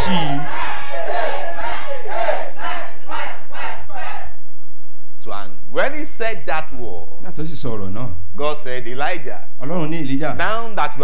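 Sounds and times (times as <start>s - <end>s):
congregation shouting: 0.0s - 4.4s.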